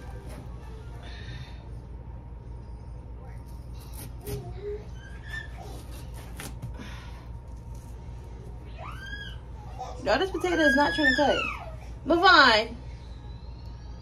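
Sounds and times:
steady low hum: 0.0s - 14.0s.

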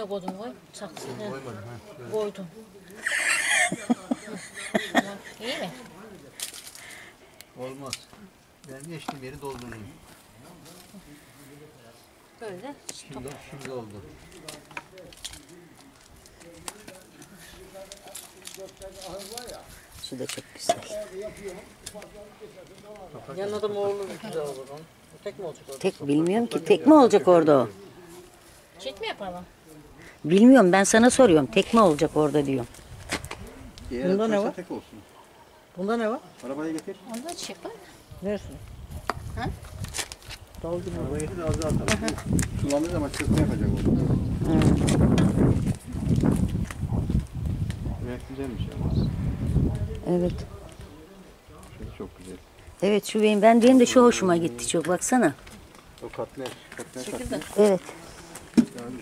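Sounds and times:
quiet background talking: 0.0s - 32.7s
indistinct voices talking: 2.4s - 7.2s
rustling: 7.8s - 26.0s.

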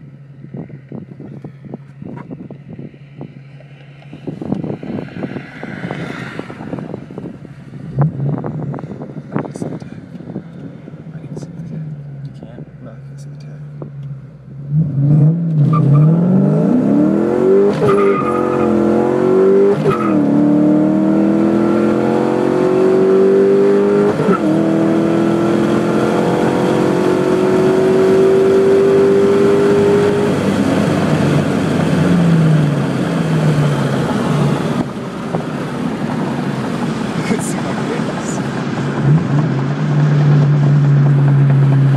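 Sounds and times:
car engine revving hard: 14.6s - 41.9s.

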